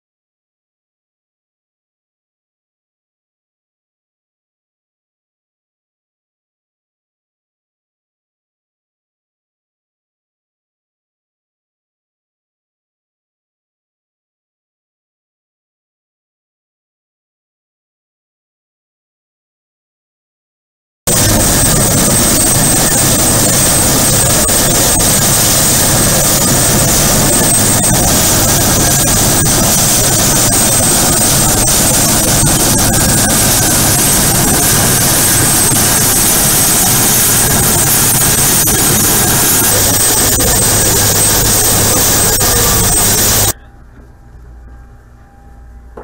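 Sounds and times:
helicopter rotor and turbine noise: 21.1s - 46.0s
high turbine whine: 21.1s - 46.0s.

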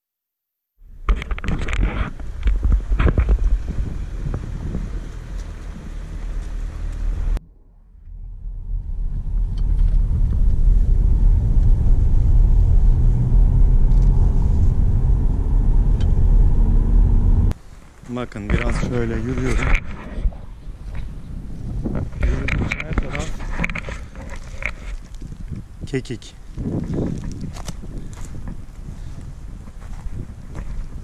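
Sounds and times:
car engine and tyre rumble: 0.8s - 31.0s.

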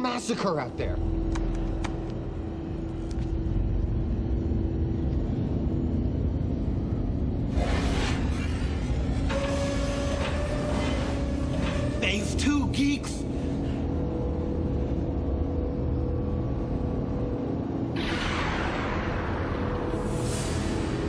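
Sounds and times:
low rumbling drone: 0.6s - 21.0s.

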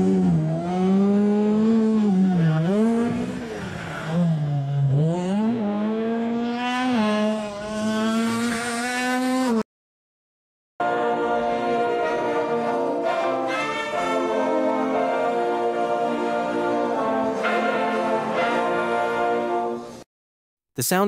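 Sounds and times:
sports car engine: 0.0s - 9.6s.

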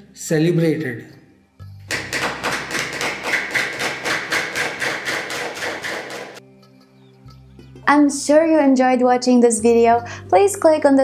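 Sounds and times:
hands clapping: 1.9s - 6.4s.

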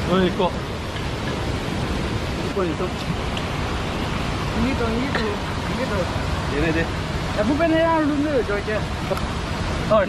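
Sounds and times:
rushing stream water: 0.0s - 10.0s.

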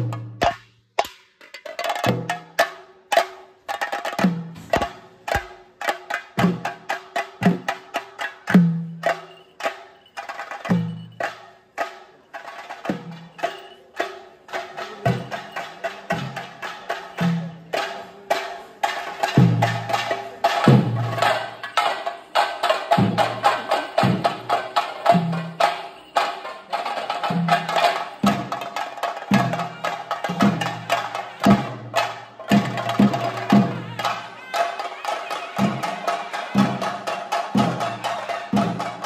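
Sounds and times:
drums played with sticks: 0.0s - 39.0s.

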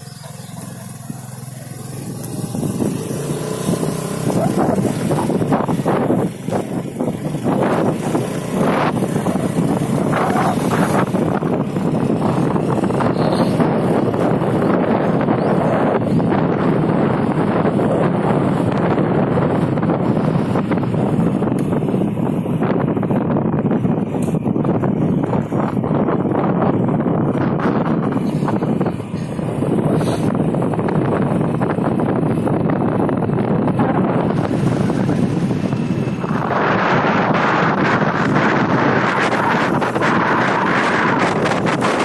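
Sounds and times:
motorcycle engine: 0.0s - 42.0s
road noise: 0.0s - 42.0s
wind buffeting microphone: 0.0s - 42.0s.

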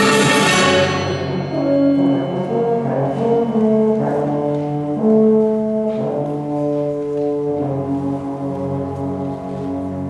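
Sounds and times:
wind band playing held chords: 0.0s - 10.0s.

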